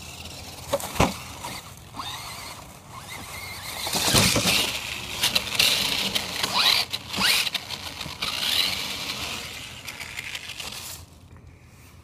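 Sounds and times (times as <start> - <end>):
toy car motor whines: 0.0 - 11.2
leaves rustling and scraping: 0.0 - 12.0.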